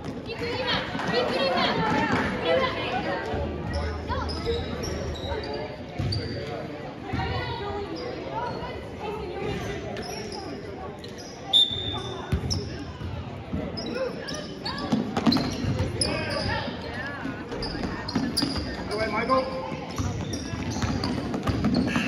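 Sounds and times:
sneaker squeaks: 3.6 - 22.0.

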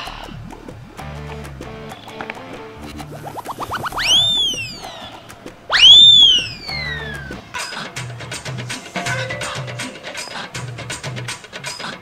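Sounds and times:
whistling swoops: 3.0 - 7.4, 9.0 - 10.8
short rising whistle chirps: 3.3 - 5.1, 5.7 - 7.3.

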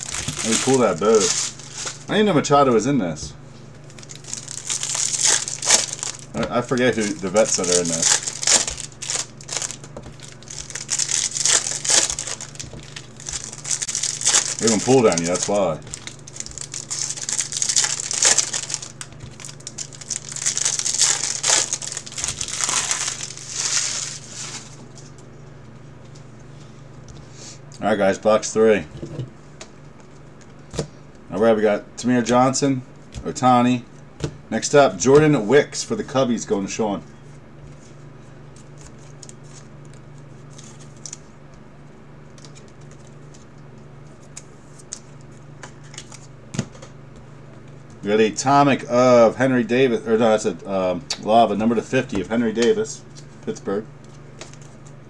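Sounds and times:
plastic wrappers crinkling: 0.0 - 2.1, 3.8 - 25.2
steady low hum: 0.0 - 55.0.

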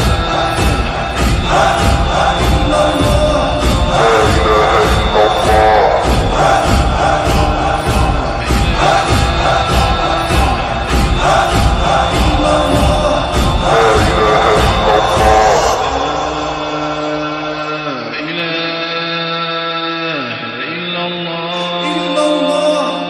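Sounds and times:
deep steady beat: 0.0 - 17.2
chanted voices: 0.0 - 18.6.

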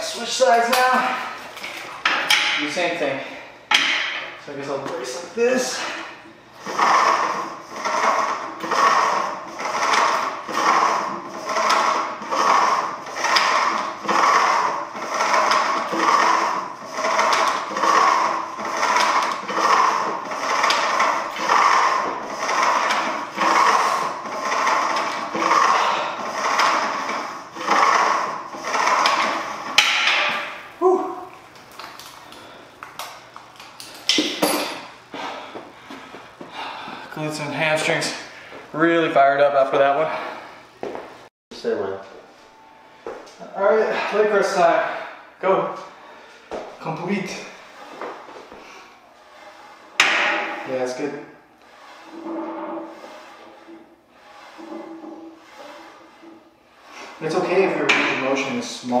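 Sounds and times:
cable and pulley noise: 6.6 - 35.4, 46.8 - 59.0.

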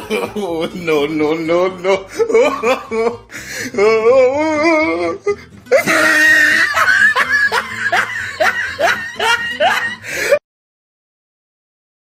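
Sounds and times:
person chuckling: 0.0 - 10.4.

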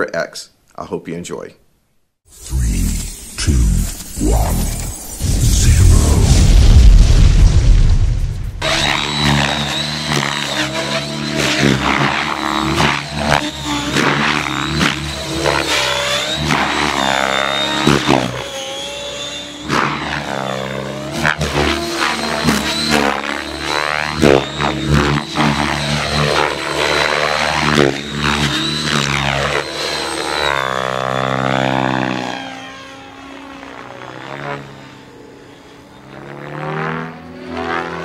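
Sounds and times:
rc helicopter rotor whine: 2.3 - 6.2, 8.6 - 38.0
loud deep rumble: 4.2 - 8.8.

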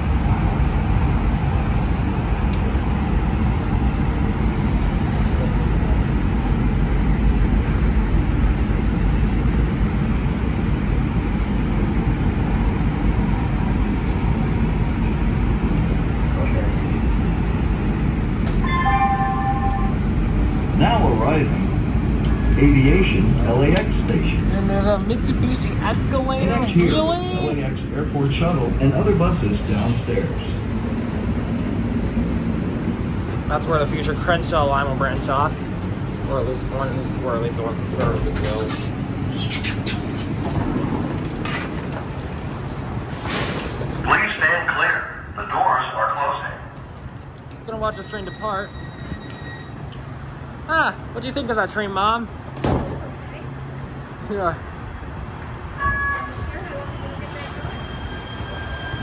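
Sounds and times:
train motors and wheels rumbling: 0.0 - 59.0
voices: 20.7 - 31.7, 36.2 - 40.4, 44.0 - 46.8, 55.8 - 59.0.

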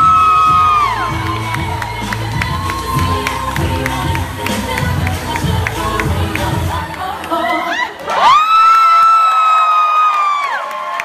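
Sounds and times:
dance music: 0.0 - 8.4
crowd cheering and clapping: 0.0 - 11.0.

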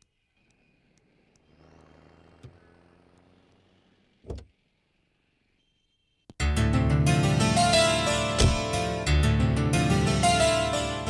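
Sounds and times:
vehicle engine running faintly: 0.1 - 5.6
short sharp thump: 4.2 - 4.5.

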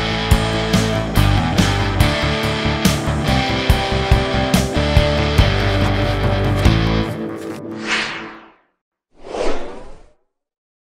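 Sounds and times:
whoosh sound effect: 7.8 - 8.6, 9.2 - 10.2.

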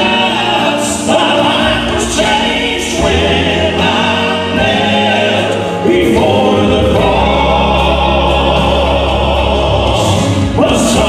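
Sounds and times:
male quartet singing in harmony: 0.0 - 11.0.

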